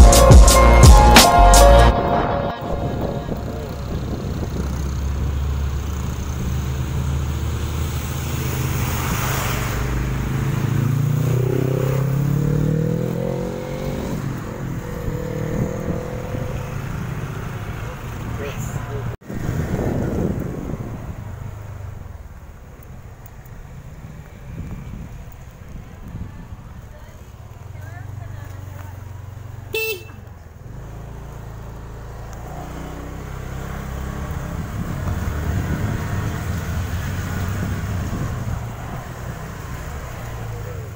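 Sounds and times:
tyres on wet asphalt: 0:00.0 - 0:40.9
vehicle engine: 0:00.0 - 0:40.9.

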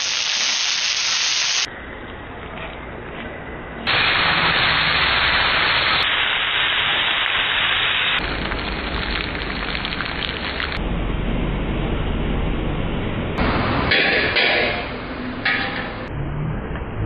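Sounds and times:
fish sizzling in a hot pan: 0:00.0 - 0:01.7
egg crackling in a pan: 0:08.2 - 0:10.8.

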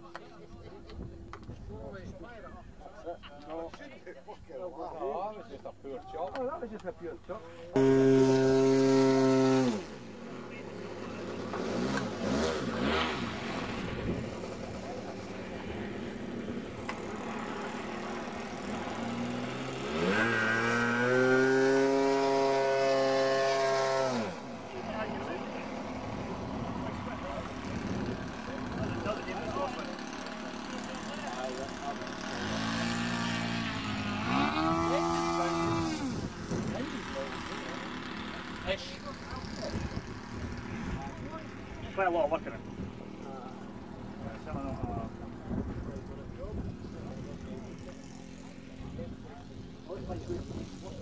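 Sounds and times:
model aircraft engine buzzing: 0:07.7 - 0:51.0.

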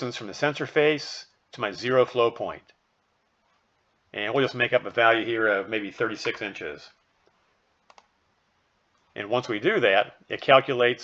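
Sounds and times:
computer mouse clicking: 0:07.2 - 0:08.2.

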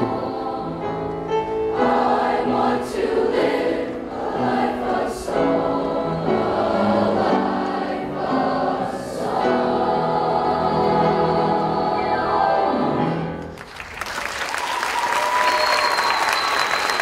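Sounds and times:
choir of young voices singing: 0:00.0 - 0:13.3.

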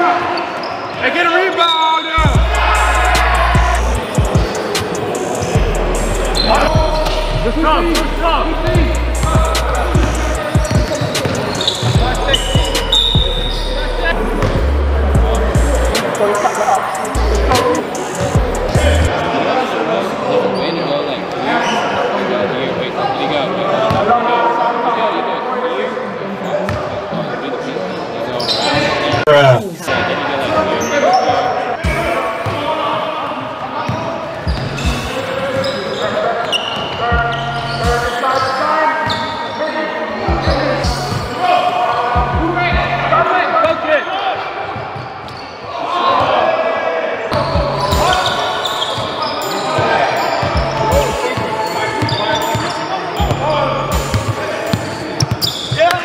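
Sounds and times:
indistinct shouts and chatter: 0:00.0 - 0:26.4, 0:27.0 - 0:56.0
hip-hop beat with bass: 0:02.2 - 0:19.2, 0:37.1 - 0:38.1, 0:40.3 - 0:41.3, 0:42.2 - 0:43.2, 0:47.4 - 0:48.4, 0:50.4 - 0:51.6, 0:53.2 - 0:54.4
basketball bouncing on court: 0:08.7 - 0:13.4, 0:50.4 - 0:53.4, 0:54.0 - 0:55.8.

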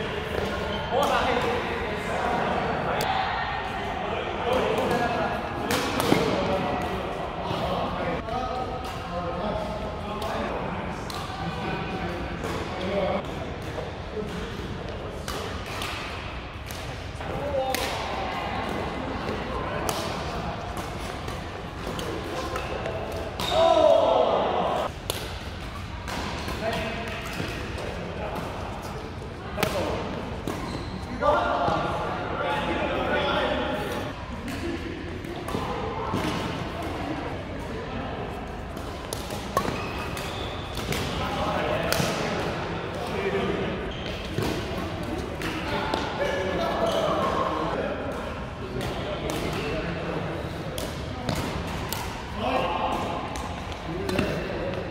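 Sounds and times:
voices echoing in sports hall: 0:00.0 - 0:54.9
rackets hitting shuttlecock: 0:04.5 - 0:07.0, 0:12.4 - 0:24.0, 0:24.8 - 0:29.0, 0:38.7 - 0:43.2, 0:48.1 - 0:49.8, 0:50.8 - 0:54.8.

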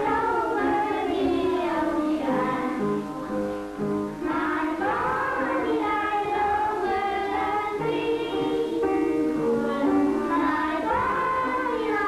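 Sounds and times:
film music with choir singing: 0:00.0 - 0:12.0.

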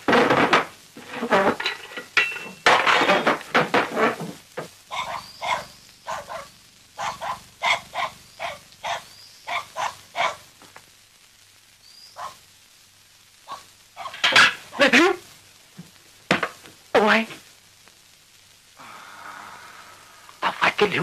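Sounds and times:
dog barking: 0:04.9 - 0:10.5, 0:12.1 - 0:12.4, 0:13.4 - 0:14.3.

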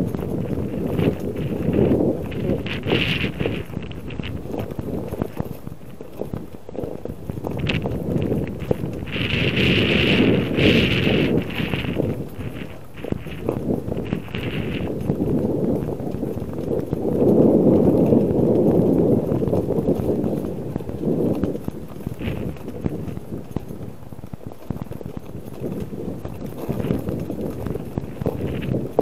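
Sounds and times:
bicycle tyres crunching over ice: 0:00.0 - 0:29.0.

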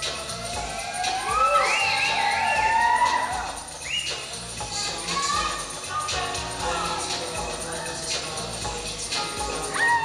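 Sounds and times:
high pitch sweeps: 0:00.0 - 0:05.6
recorded dance music: 0:00.0 - 0:10.0.

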